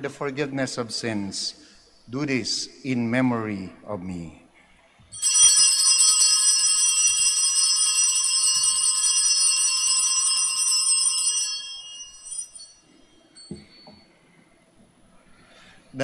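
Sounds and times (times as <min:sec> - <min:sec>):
altar bells ringing: 0:05.1 - 0:14.3.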